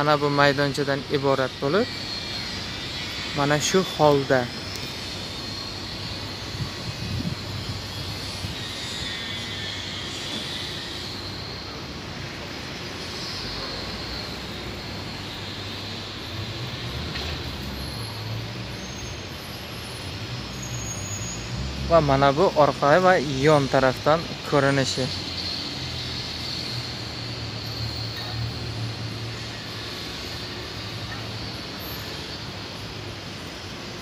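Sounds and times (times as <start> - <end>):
distant road traffic: 0.0 - 34.0.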